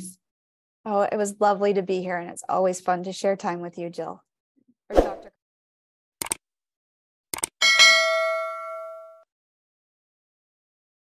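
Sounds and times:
bell ding: 7.6 - 9.3.

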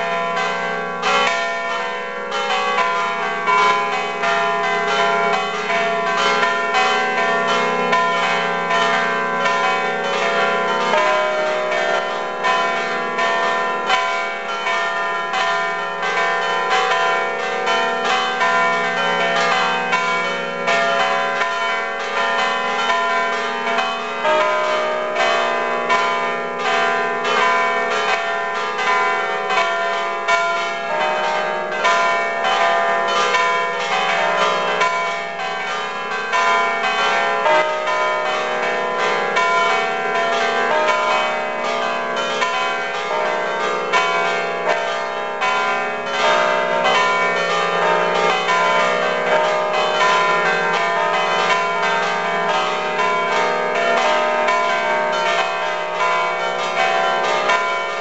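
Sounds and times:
church bells ringing: 0.0 - 58.0.

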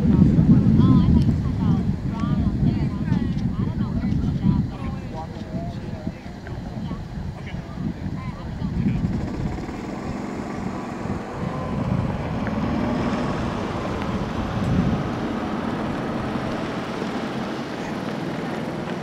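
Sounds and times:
slow vehicle traffic: 0.0 - 19.0
wind buffeting microphone: 0.0 - 19.0.

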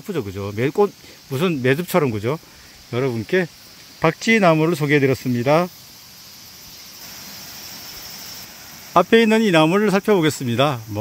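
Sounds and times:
faint hiss: 0.0 - 11.0
insects chirping: 0.0 - 11.0.

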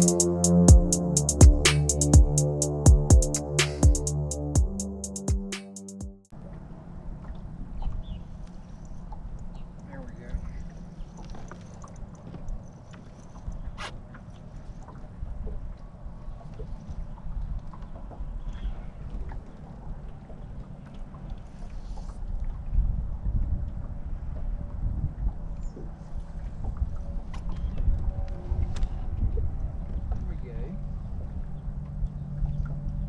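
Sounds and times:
background music: 0.0 - 6.3
water lapping at hull: 6.3 - 33.0
faint clicks: 8.4 - 14.9
wind rumble on microphone: 14.9 - 33.0.

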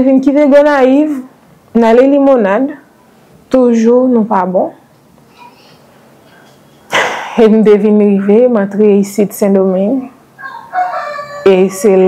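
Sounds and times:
woman speaking: 0.0 - 2.9, 3.5 - 4.8, 7.3 - 10.2, 11.3 - 12.0
room hiss: 0.2 - 10.5.

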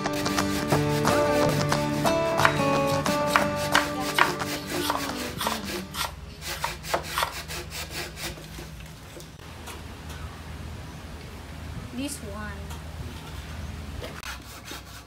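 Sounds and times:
hand saw cutting bamboo: 0.0 - 1.5, 2.4 - 8.8, 14.2 - 15.0
background music: 0.0 - 6.0.

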